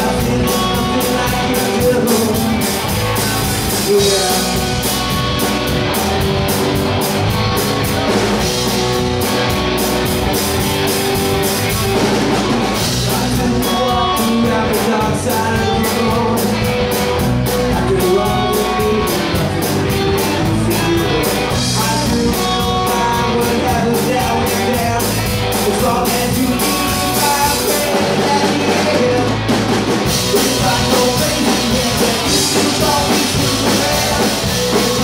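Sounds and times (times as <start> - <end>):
lead vocal singing: 0.0 - 5.0, 12.7 - 35.0
drum kit beat: 0.0 - 35.0
electric guitars: 0.0 - 35.0.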